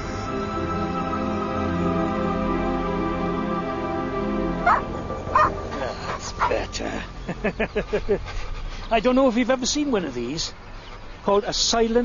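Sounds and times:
background music: 0.0s - 8.3s
dog barking: 4.6s - 6.6s.

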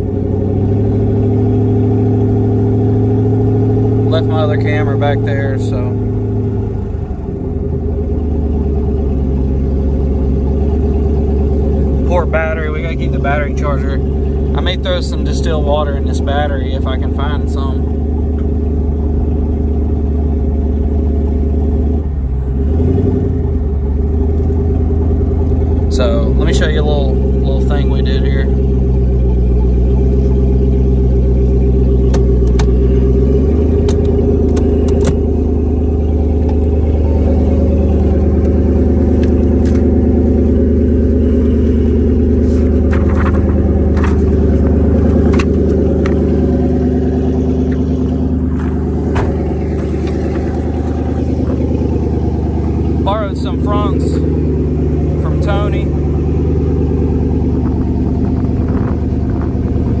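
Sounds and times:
car engine running from cabin: 0.0s - 60.0s.

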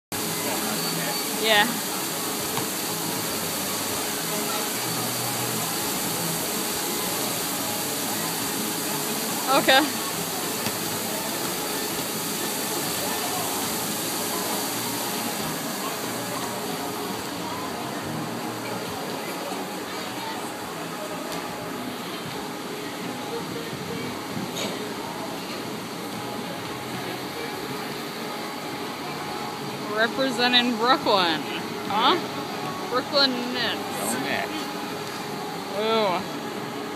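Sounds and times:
faint distant voices: 0.2s - 36.9s.

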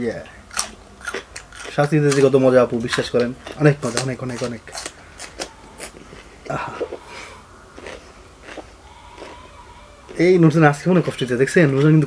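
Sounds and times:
crunchy chewing: 0.4s - 12.0s
person speaking: 1.7s - 4.9s, 6.4s - 7.4s, 10.1s - 12.0s.

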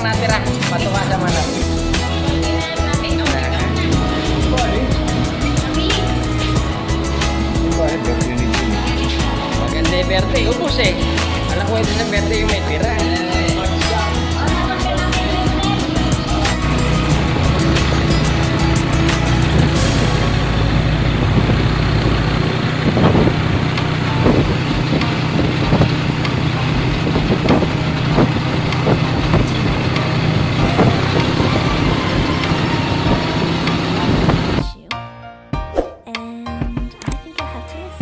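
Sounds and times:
vehicle engine running: 0.0s - 34.7s
music playing: 0.0s - 38.0s.

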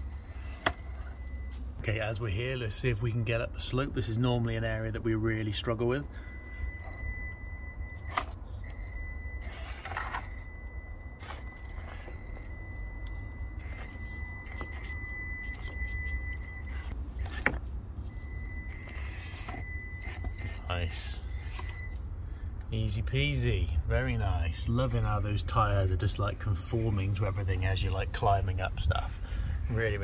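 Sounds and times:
electric motor whine: 11.2s - 17.6s.

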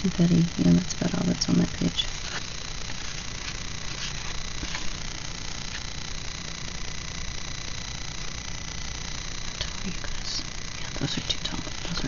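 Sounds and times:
low rumble and hiss: 0.0s - 12.0s
sticker sheets rustling: 2.0s - 5.8s.

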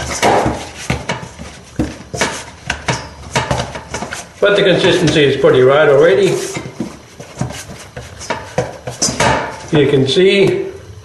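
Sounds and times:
dough kneading by hand: 0.0s - 10.8s.

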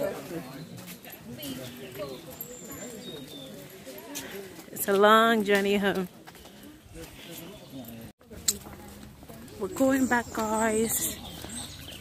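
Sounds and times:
group of people talking: 0.0s - 12.0s.

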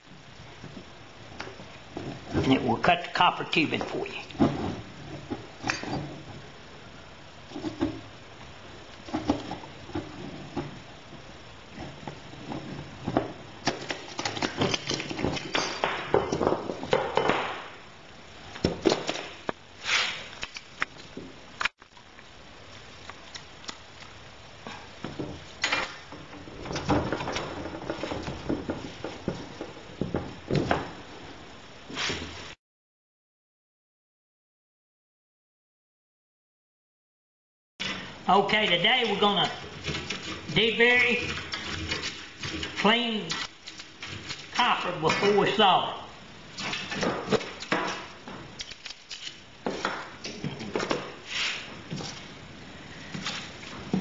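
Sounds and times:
tools and pipes clicking on wood: 13.6s - 17.1s, 39.0s - 45.4s, 46.6s - 51.0s.

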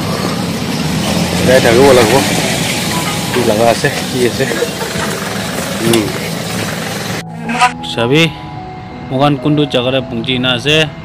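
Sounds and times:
vehicle engine running: 0.0s - 7.6s.

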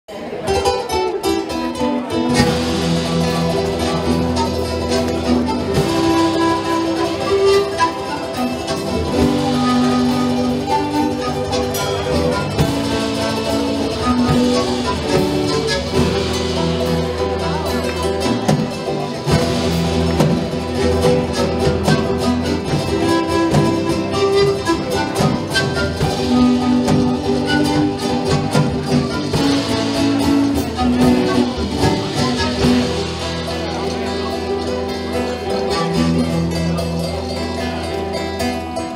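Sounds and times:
folk band playing held notes: 0.1s - 38.9s
plucked acoustic guitar: 0.1s - 38.9s
strummed charango: 0.1s - 38.9s
small plucked string instrument: 0.4s - 38.9s
drum kit: 0.6s - 38.9s.

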